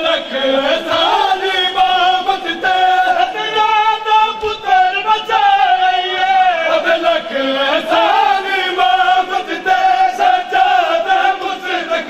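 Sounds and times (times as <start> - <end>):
man chanting a lament: 0.0 - 12.0.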